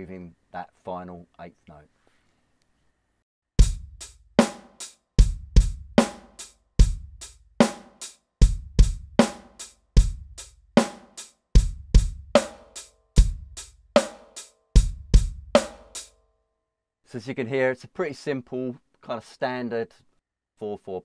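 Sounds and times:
electronic drum groove: 3.6s - 16.1s.

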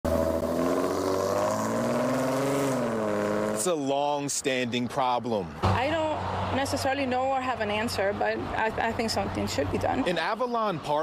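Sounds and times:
car engine pulling away: 0.0s - 3.8s.

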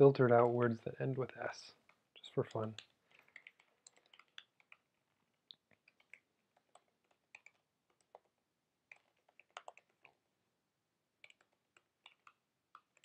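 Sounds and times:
keystrokes on computer keyboard: 1.8s - 10.2s, 11.2s - 13.0s.

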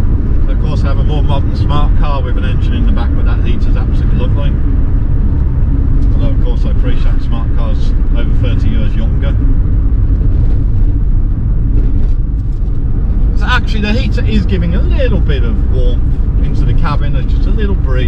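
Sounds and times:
car engine and road drone: 0.0s - 18.0s
man talking: 0.5s - 4.6s, 6.1s - 9.4s, 13.4s - 18.0s.

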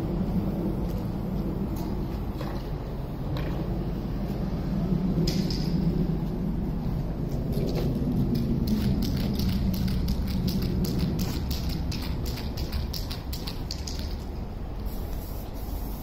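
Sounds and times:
low street rumble: 0.0s - 16.0s.

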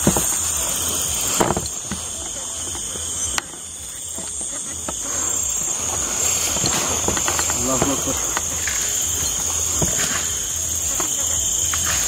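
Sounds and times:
crickets trilling: 0.0s - 12.0s
rustling through weeds: 0.0s - 12.0s.

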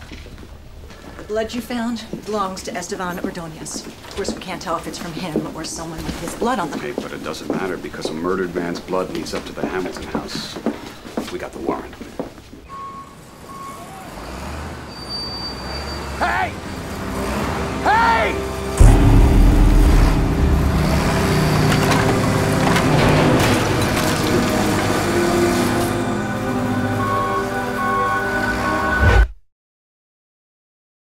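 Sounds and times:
debris crunching: 18.8s - 25.8s
crash of collapsing timber: 18.8s - 25.9s
low machine rumble: 18.8s - 26.1s.

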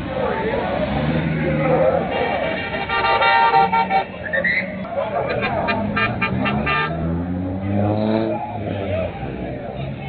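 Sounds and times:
street noise: 0.0s - 10.0s
car horn beeps: 2.6s - 4.7s, 5.3s - 7.1s
car engine revving: 5.1s - 9.8s.

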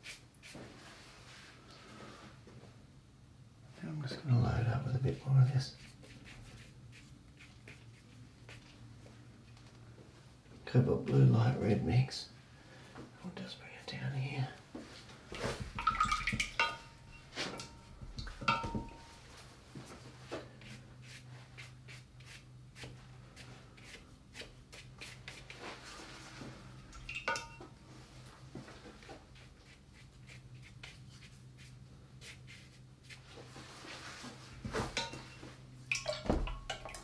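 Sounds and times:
brush strokes on wet paper: 0.0s - 2.2s, 4.3s - 8.8s, 19.5s - 26.7s, 28.7s - 34.8s.

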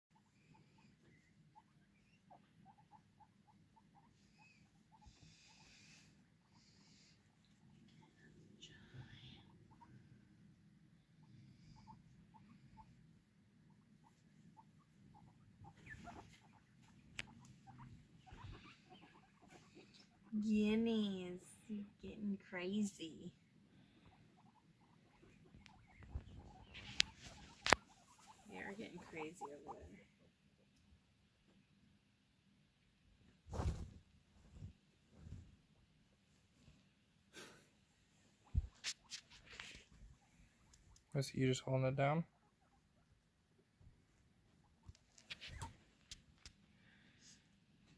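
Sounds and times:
guinea pigs squeaking: 0.1s - 46.7s.

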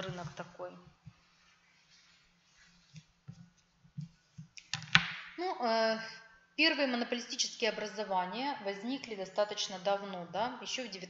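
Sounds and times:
woman speaking: 0.0s - 0.9s, 5.4s - 11.0s.

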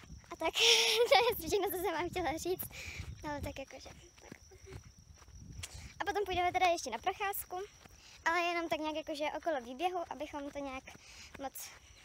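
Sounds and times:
wind rumble on microphone: 0.0s - 8.3s.

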